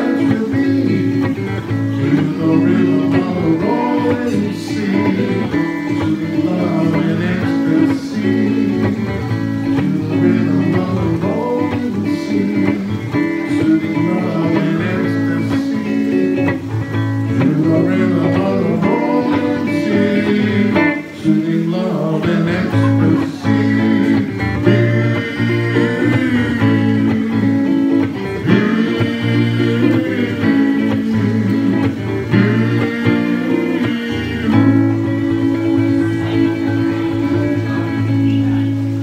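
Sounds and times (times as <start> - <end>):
bass line: 0.0 - 39.0
electric guitar through amplifier: 0.0 - 39.0.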